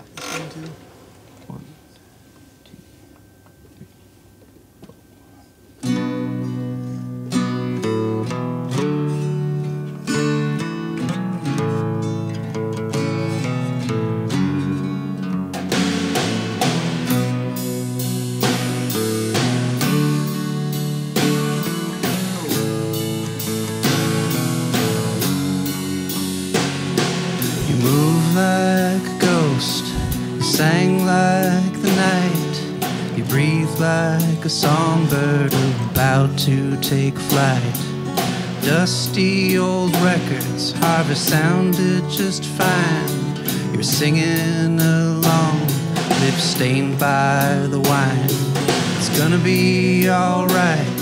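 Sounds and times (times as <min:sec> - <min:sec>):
acoustic guitar chords: 0:05.7 - 0:51.0
electric guitar chords: 0:05.8 - 0:51.0
drum kit: 0:15.5 - 0:51.0.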